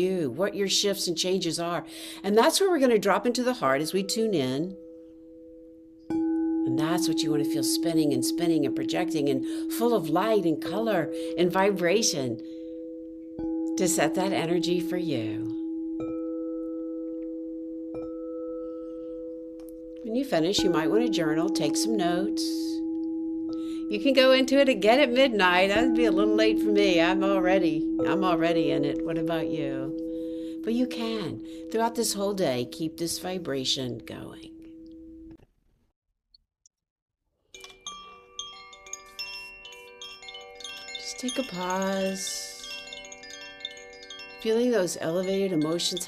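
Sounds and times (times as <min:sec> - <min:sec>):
singing bowl ringing: 0:03.6 - 0:35.3, 0:37.6 - 0:46.0
padded mallet striking bowl: 0:12.7 - 0:32.9.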